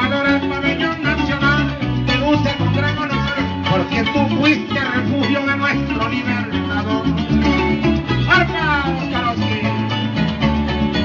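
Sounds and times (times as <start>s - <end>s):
bass line: 0.0s - 11.0s.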